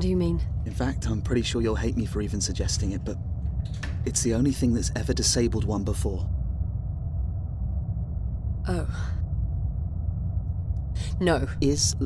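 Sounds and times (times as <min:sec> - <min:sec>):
aircraft cabin drone: 0:00.0 - 0:12.0.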